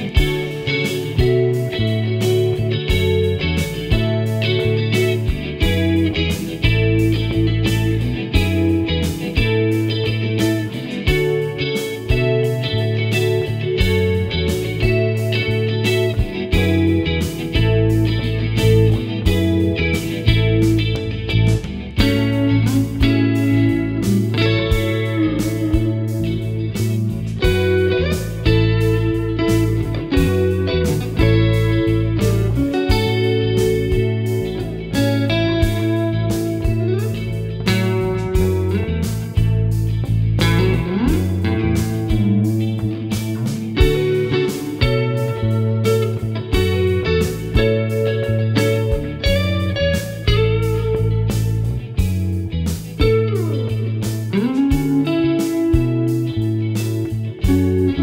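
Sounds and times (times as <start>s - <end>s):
backing track with bass and beat: 0.0s - 58.0s
clean electric guitar melody: 0.0s - 58.0s.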